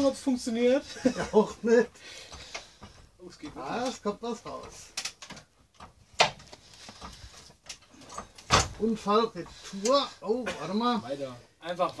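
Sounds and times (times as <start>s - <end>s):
faint creaking and scraping: 1.4s - 12.0s.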